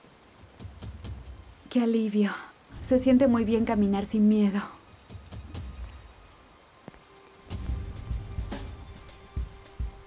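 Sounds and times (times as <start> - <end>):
rain on wet pavement: 0.0 - 10.0
dripping water: 0.4 - 9.5
soundtrack music with deep beats: 5.0 - 10.0.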